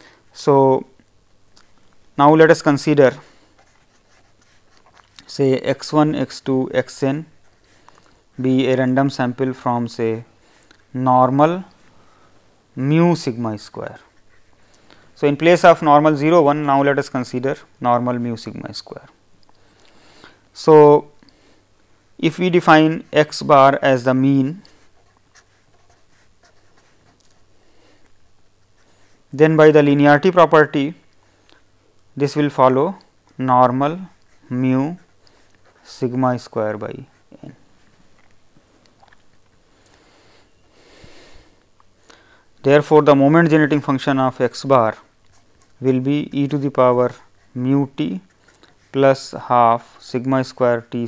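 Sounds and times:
pen scratching on paper: 0:03.5 - 0:05.2, 0:24.6 - 0:27.5, 0:33.7 - 0:37.6.

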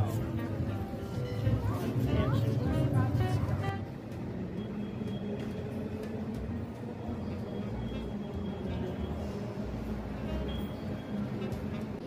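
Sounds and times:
low rumble of hall ambience: 0:00.0 - 0:12.0.

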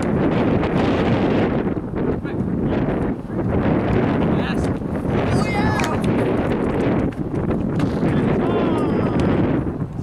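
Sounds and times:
wind rumbling on microphone: 0:00.0 - 0:10.0
balls being kicked: 0:03.8 - 0:09.4
distant players shouting: 0:05.2 - 0:06.2, 0:08.0 - 0:09.4.

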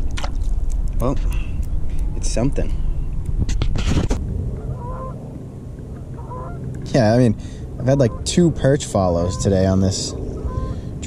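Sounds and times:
water splashing and dripping: 0:00.0 - 0:02.4
waterbird honking: 0:04.6 - 0:05.2, 0:05.8 - 0:06.8, 0:07.8 - 0:10.9.

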